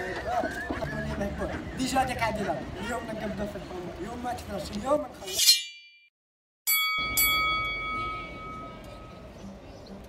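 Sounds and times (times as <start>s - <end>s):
bell-like chime ringing: 6.7s - 9.3s.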